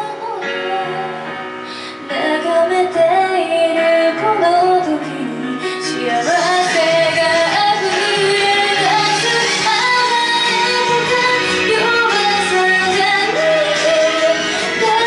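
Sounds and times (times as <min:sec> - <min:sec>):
instrumental accompaniment: 0:00.0 - 0:15.0
woman singing into a microphone: 0:00.0 - 0:15.0.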